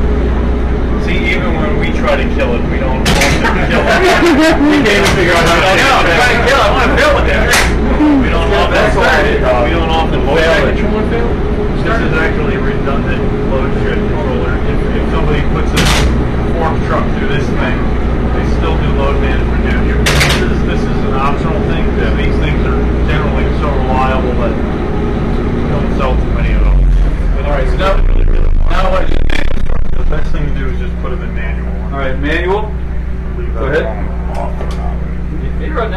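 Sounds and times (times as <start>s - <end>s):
generators droning: 0.0s - 35.9s
background chatter: 0.9s - 35.9s.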